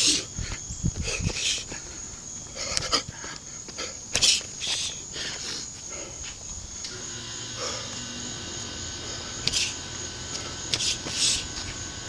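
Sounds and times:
sharp hissing exhales: 0:02.6 - 0:08.2, 0:08.8 - 0:11.9.

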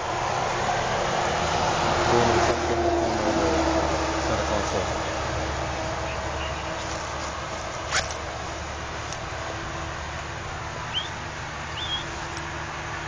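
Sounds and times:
road vehicle rush: 0:00.0 - 0:13.0.

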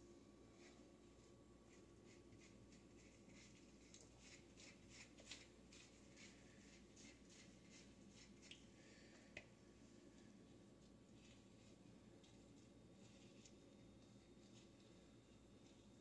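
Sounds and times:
brush strokes through wet hair: 0:00.5 - 0:08.7, 0:10.1 - 0:16.0.

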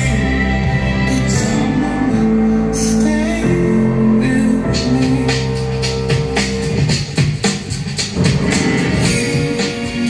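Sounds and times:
music with steady drumbeat: 0:00.0 - 0:01.8, 0:02.9 - 0:10.0.

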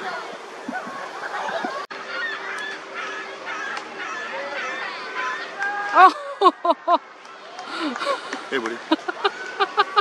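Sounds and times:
bird calls: 0:00.6 - 0:05.6.

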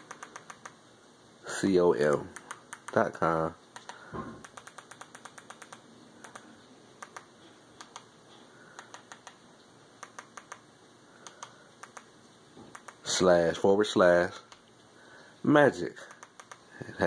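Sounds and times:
remote control button clicks: 0:10.0 - 0:10.6, 0:11.2 - 0:12.1.

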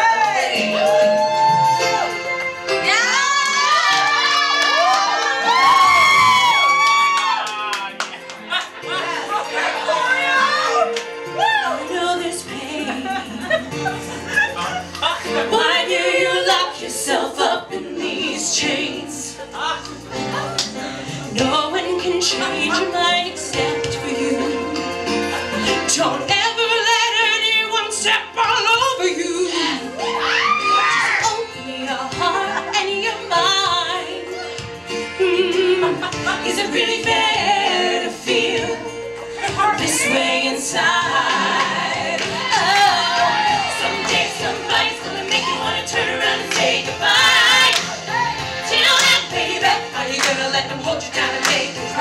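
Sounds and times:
women singing in harmony: 0:08.5 - 0:52.0.

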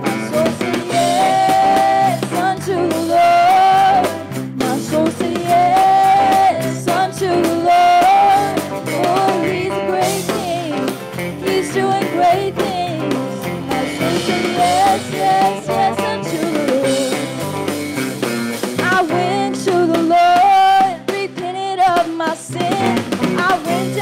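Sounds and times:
women singing: 0:00.0 - 0:17.7, 0:18.8 - 0:24.0
drum kit: 0:00.0 - 0:24.0
electric guitars: 0:00.0 - 0:24.0.

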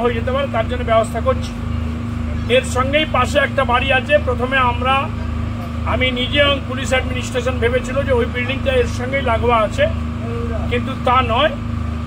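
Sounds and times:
engine droning: 0:00.0 - 0:12.0
man speaking: 0:02.4 - 0:11.6.

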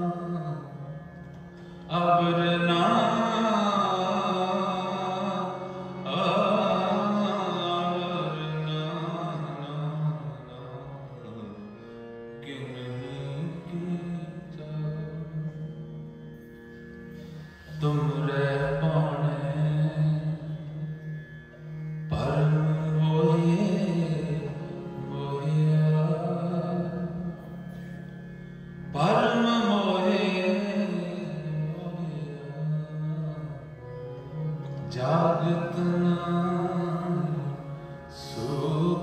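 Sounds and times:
devotional harmonium music: 0:00.0 - 0:39.0.

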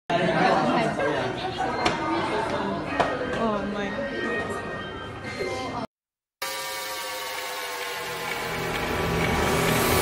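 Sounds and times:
people chattering: 0:00.1 - 0:05.9.

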